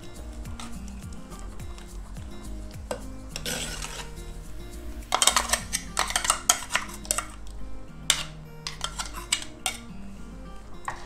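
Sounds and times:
spoon stirring thick mixture: 0.0s - 9.9s
spoon scraping clay pot: 0.0s - 10.0s.

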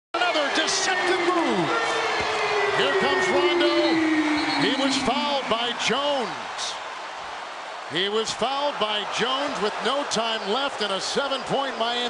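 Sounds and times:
arena crowd noise: 0.1s - 12.0s.

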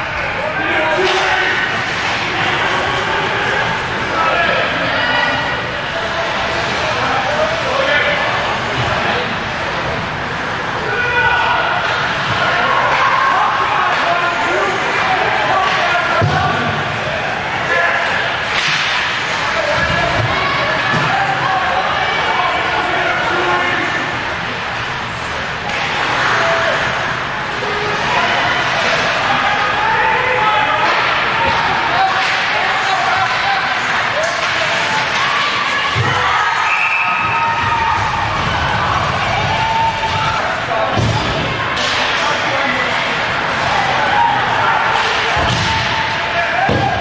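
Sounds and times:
spectators talking: 0.0s - 47.0s
puck and players slamming boards: 15.6s - 16.8s, 18.4s - 21.3s, 30.8s - 32.7s, 37.2s - 42.6s, 44.9s - 45.9s, 46.6s - 47.0s.

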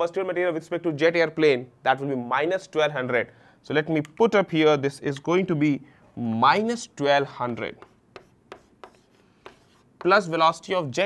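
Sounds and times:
chalk scratching on chalkboard: 7.5s - 10.4s.

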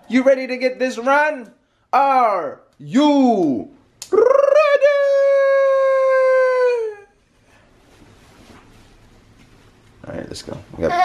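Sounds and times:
dog howling: 4.4s - 7.1s.

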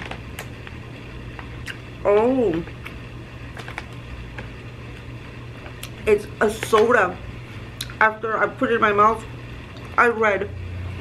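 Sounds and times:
low room hum: 0.0s - 11.0s
person chewing soft candy: 1.5s - 1.8s.

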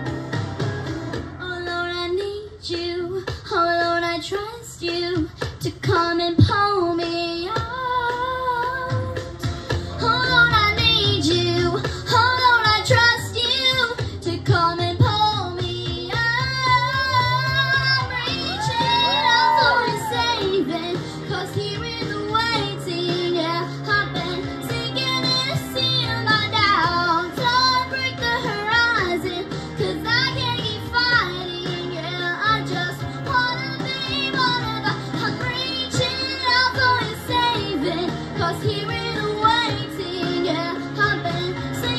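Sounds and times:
musical accompaniment: 0.0s - 2.9s, 7.0s - 41.9s
girl singing into microphone: 1.4s - 41.9s.

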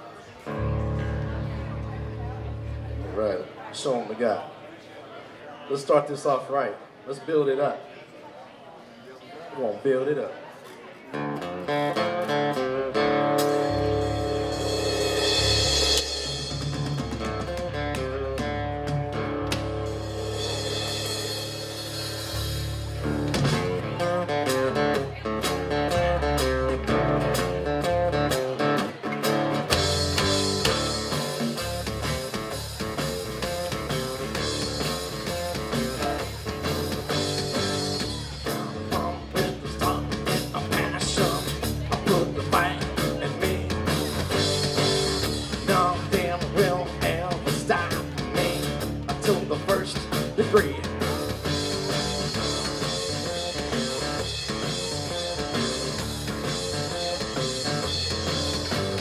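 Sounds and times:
band playing guitars: 0.0s - 3.9s, 11.1s - 59.0s
drum kit: 11.7s - 59.0s
cymbals: 13.4s - 17.5s, 19.6s - 23.2s.

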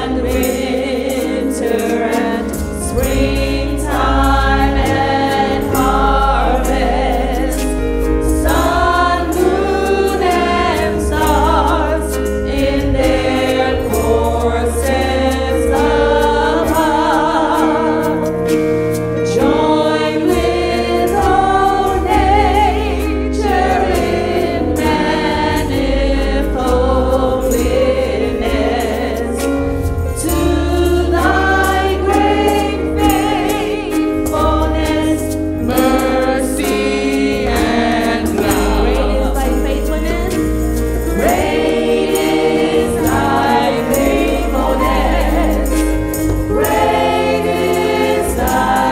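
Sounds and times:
gospel group singing in harmony: 0.0s - 48.9s.

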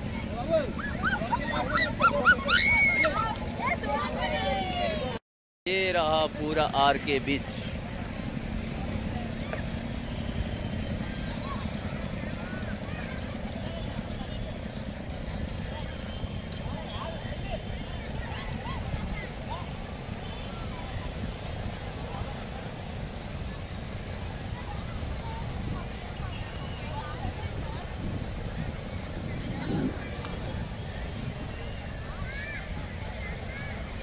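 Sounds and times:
distant voices talking and calling: 0.0s - 5.2s, 7.4s - 34.0s
surf rumble: 0.0s - 5.2s, 16.4s - 34.0s
wind: 0.0s - 34.0s.

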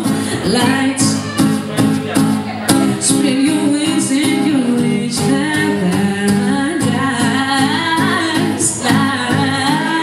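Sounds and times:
woman singing through pa: 0.0s - 1.6s, 3.0s - 10.0s
acoustic guitar: 0.0s - 10.0s.

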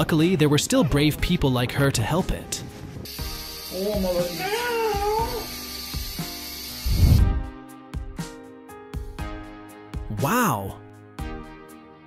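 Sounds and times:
background music: 0.0s - 12.0s
cat yowling: 4.2s - 5.5s.

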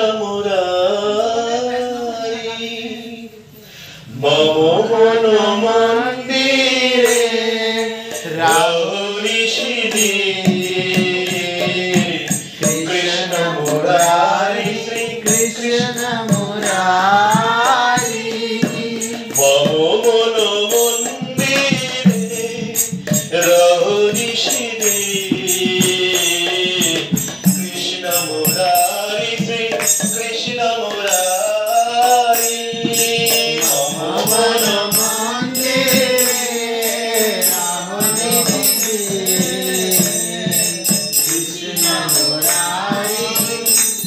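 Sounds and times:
man singing: 0.0s - 3.5s, 4.1s - 44.0s
hand drum beat: 9.7s - 20.1s, 20.8s - 44.0s.

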